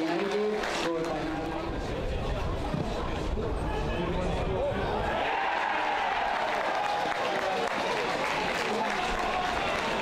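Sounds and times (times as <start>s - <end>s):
crowd applauding and cheering: 5.1s - 10.0s.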